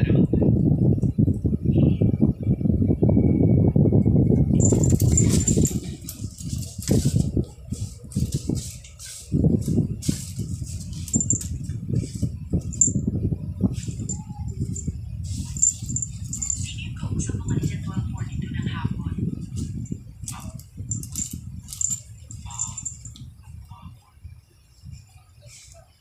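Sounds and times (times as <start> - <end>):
collar charm jingling: 4.5 - 7.2, 10.7 - 13.0, 13.8 - 17.9, 19.8 - 23.2
cat scuffling on hard floor: 4.7 - 12.8.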